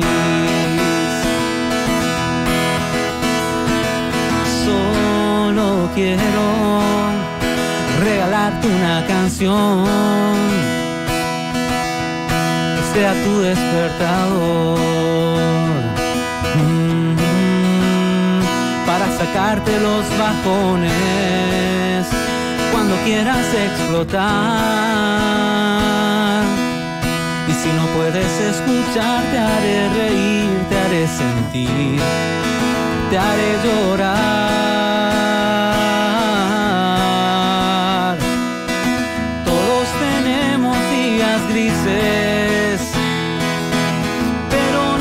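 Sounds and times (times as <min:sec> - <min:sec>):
acoustic guitar strumming: 0:00.0 - 0:45.0
person singing: 0:00.0 - 0:45.0.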